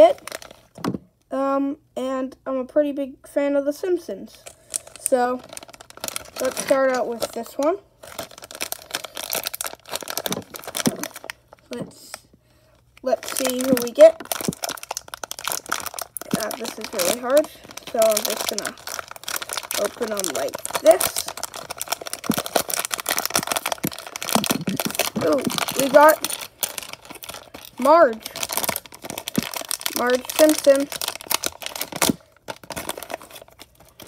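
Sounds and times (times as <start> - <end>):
plastic bag crinkling: 0.0 - 1.0, 4.4 - 12.2, 12.8 - 34.0.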